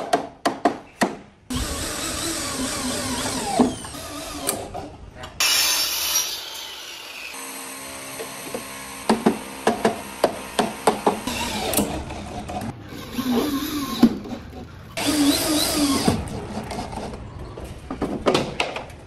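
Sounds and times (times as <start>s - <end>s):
electric drill driving screws: 1.5s - 4.7s, 15.0s - 16.2s.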